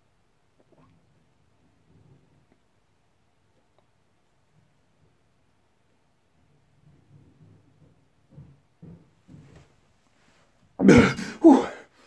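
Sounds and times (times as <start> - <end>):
man coughing exhalations: 10.8 - 11.8.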